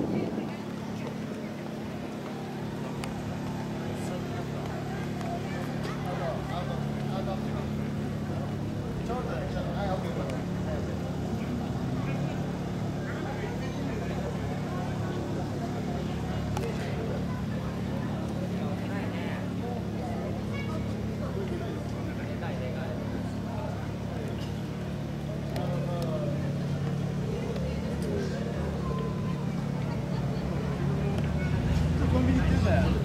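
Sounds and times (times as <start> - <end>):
people talking: 0.0 - 33.0
vehicle engine idling: 0.0 - 33.0.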